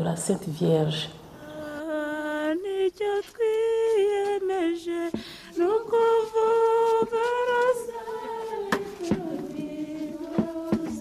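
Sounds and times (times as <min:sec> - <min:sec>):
woman speaking: 0:00.0 - 0:01.2.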